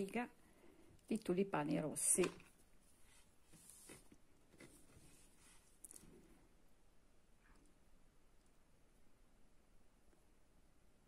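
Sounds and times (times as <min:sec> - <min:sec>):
soft rustles of yarn: 0:00.0 - 0:06.8.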